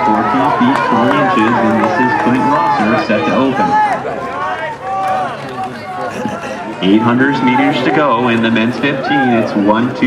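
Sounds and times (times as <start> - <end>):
indistinct talking: 0.0 - 10.0.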